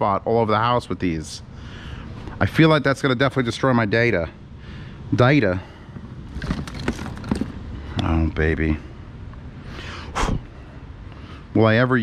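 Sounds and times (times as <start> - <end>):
plastic and cable plugs rattling: 6.3 - 7.6.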